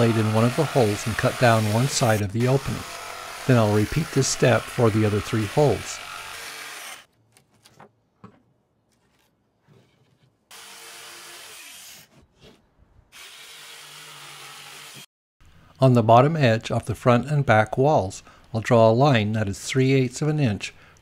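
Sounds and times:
jigsaw cutting plywood: 0.0s - 7.1s.

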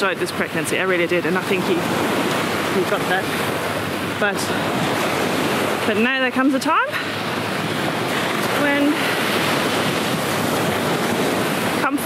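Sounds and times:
waves breaking on beach: 0.0s - 12.0s
wind on microphone: 0.0s - 12.0s.

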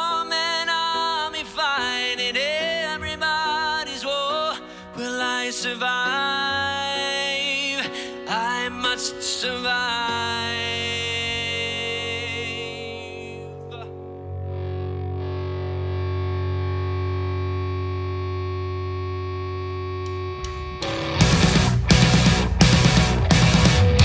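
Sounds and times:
distorted guitar and keyboard chord: 0.0s - 24.0s
deep bass note: 14.7s - 24.0s
drums and full band crashing: 20.4s - 24.0s.

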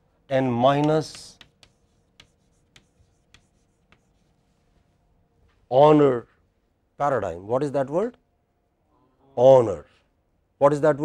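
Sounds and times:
chalk strokes and taps: 0.7s - 5.0s.

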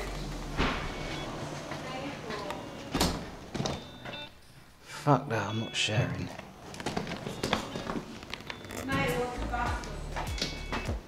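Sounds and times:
door squeaking: 6.8s - 11.0s.

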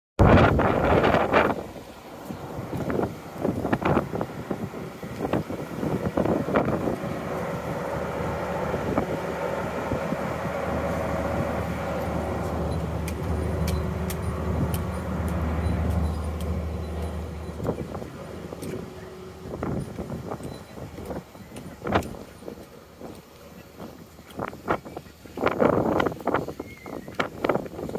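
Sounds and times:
wind gusts on microphone: 0.2s - 27.9s
diesel generator running: 0.4s - 26.3s.

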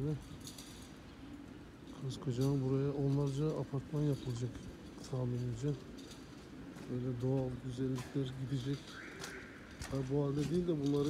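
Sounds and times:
low steady background noise: 0.0s - 11.0s
man's voice: 6.9s - 8.9s, 9.8s - 11.0s.

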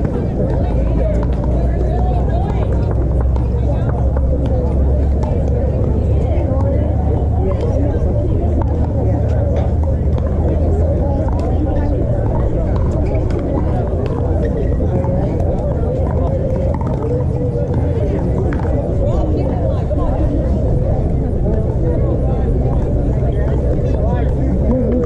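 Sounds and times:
indistinct voices of players: 0.0s - 25.0s
steady low rumble: 0.0s - 25.0s.

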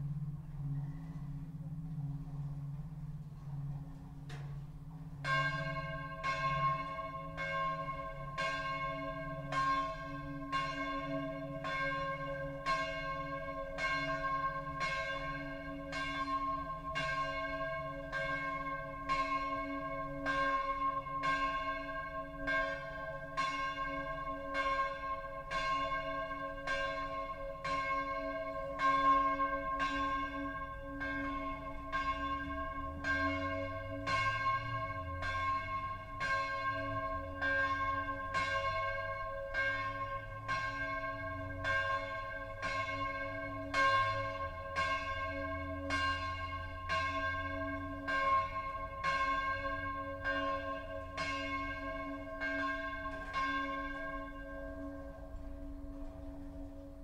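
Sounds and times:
church bell ringing: 0.0s - 57.0s.

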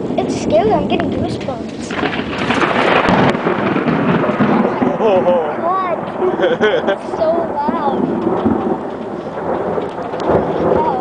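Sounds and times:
close thunder crack and rumble: 0.0s - 11.0s.

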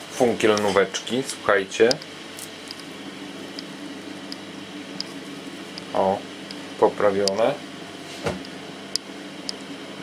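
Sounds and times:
low workshop hum: 0.0s - 10.0s.

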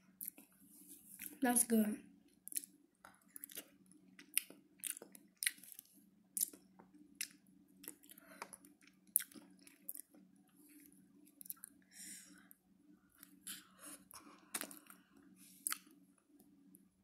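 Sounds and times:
person chewing with wet smacks: 0.2s - 0.5s, 1.1s - 1.4s, 2.4s - 11.8s, 13.2s - 15.0s, 15.6s - 16.0s.

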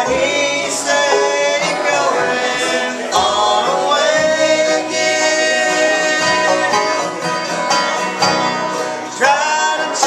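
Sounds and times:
voices singing in harmony: 0.0s - 7.7s, 8.8s - 10.0s
strummed acoustic guitars: 0.0s - 10.0s.

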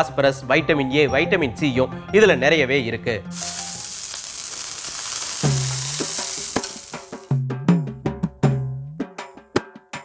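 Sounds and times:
water sizzling on hot griddle: 3.3s - 7.4s
music with bass and percussion: 5.4s - 10.0s.

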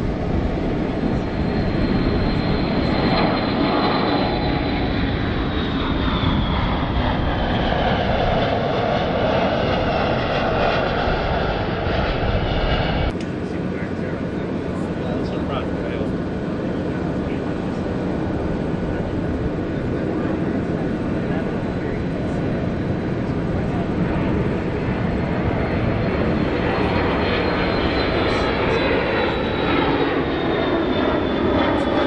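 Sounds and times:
high engine whine: 0.0s - 32.0s
jet engine noise: 0.0s - 32.0s.

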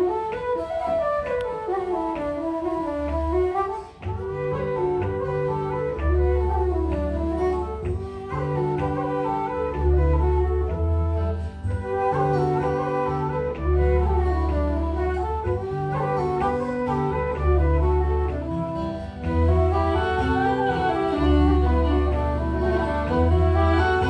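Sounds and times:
wooden flute dance tune: 0.0s - 24.0s
low bass accompaniment: 17.4s - 24.0s.

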